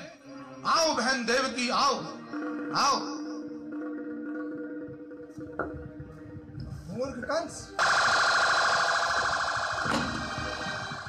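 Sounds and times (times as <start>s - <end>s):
warbling electronic alarm tone: 7.8s - 11.0s.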